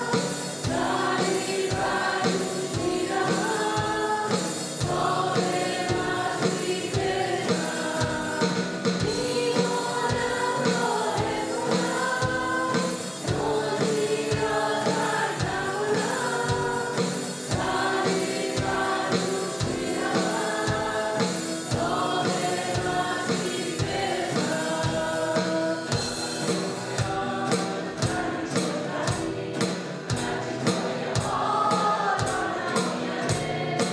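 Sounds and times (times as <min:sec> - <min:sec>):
woman singing: 0:00.0 - 0:26.0
drum kit beat: 0:00.0 - 0:33.9
electric and acoustic guitars: 0:00.0 - 0:33.9.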